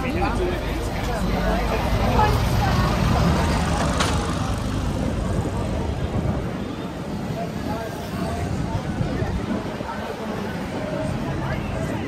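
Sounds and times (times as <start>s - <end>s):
bus engine rumble: 0.0s - 12.0s
crowd chatter: 0.0s - 12.0s.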